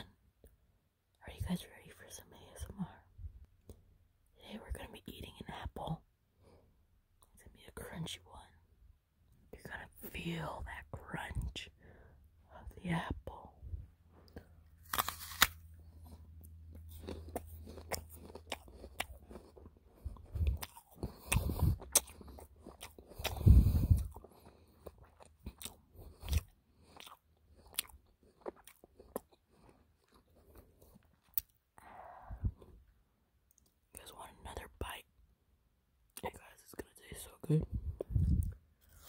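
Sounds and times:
chewing apple with crunches: 14.2 - 31.9.

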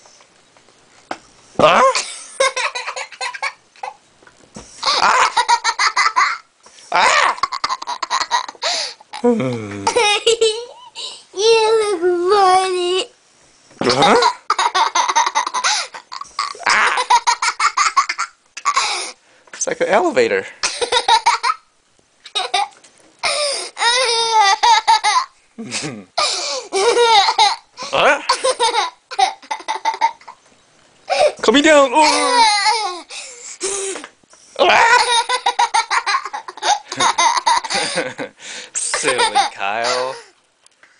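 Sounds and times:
young boy laughing: 1.6 - 4.0, 4.8 - 12.0, 13.8 - 19.2, 20.6 - 21.6, 22.2 - 30.4, 32.0 - 33.3, 34.6 - 40.3.

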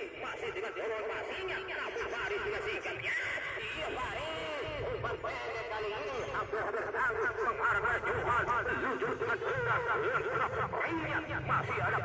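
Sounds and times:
crowd chattering and shouting: 0.0 - 12.0.

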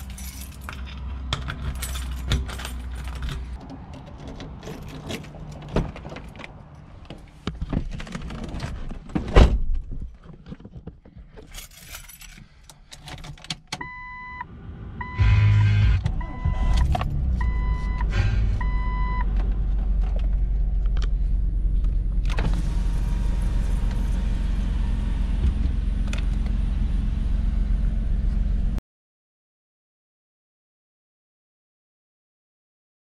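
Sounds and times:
keys jingling: 0.0 - 6.9, 11.4 - 13.5
car warning chime beeping: 13.8 - 19.3
car engine starting and idling: 13.8 - 28.8.

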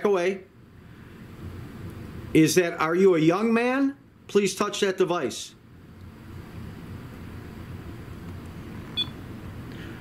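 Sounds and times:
steady low hum: 0.0 - 10.0
short high electronic beep: 9.0 - 9.2.

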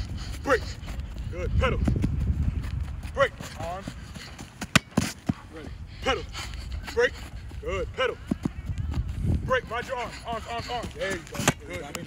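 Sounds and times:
running footsteps on artificial turf: 0.0 - 12.0.

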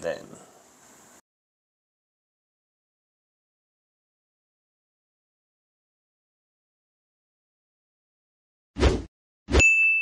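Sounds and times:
high ringing ding: 9.6 - 10.0.

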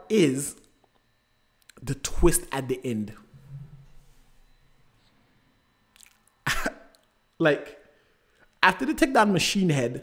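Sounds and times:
man coughing: 6.4 - 7.0.

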